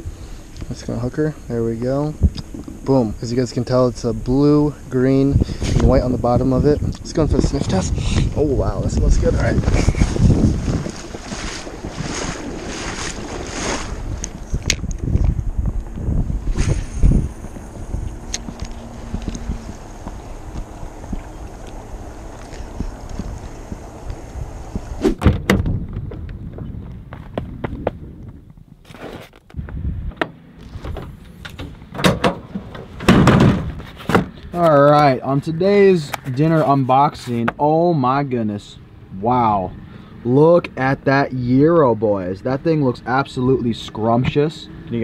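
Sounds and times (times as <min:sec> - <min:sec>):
wind buffeting microphone: 0:00.0 - 0:28.8, 0:29.5 - 0:36.8
lake water lapping: 0:09.3 - 0:14.6
sharp clicks and knocks: 0:29.3 - 0:35.1.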